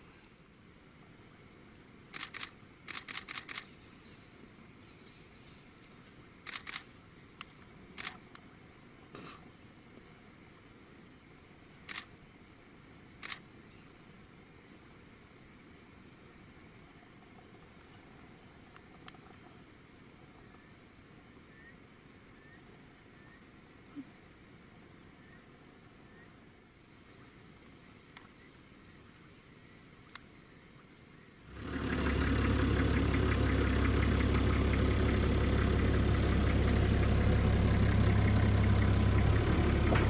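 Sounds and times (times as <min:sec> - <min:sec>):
faint night background: 0:00.0 - 0:40.0
camera shutter clicks: 0:02.1 - 0:03.7, 0:06.5 - 0:06.9, 0:08.0 - 0:08.2, 0:11.9 - 0:12.1, 0:13.2 - 0:13.4.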